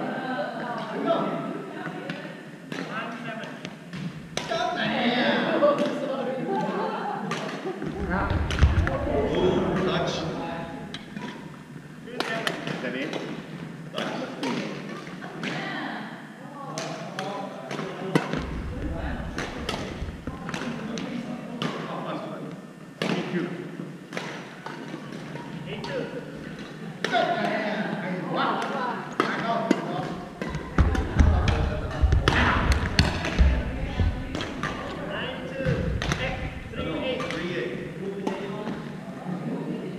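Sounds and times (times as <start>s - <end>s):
rackets striking shuttlecock: 16.8s - 21.8s, 28.6s - 37.5s
background voices: 30.0s - 39.9s.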